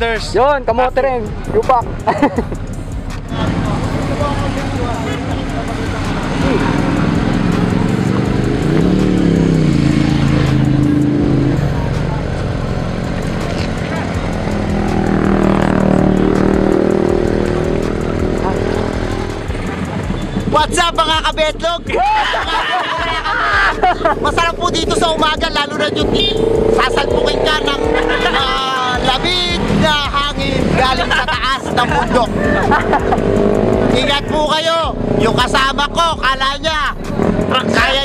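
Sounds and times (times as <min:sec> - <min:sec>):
motorcycle engine revving: 0:00.0 - 0:38.0.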